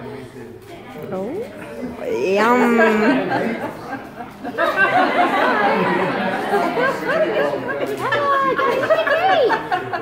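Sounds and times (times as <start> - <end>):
overlapping indistinct chatter: 0.0 - 10.0.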